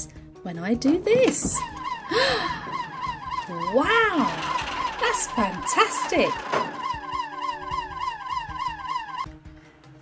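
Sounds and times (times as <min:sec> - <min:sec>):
toy electronic siren warbling: 0:01.6 - 0:09.3.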